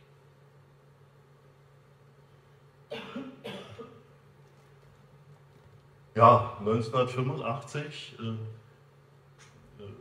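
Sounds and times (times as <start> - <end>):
person coughing: 2.9 - 4.1.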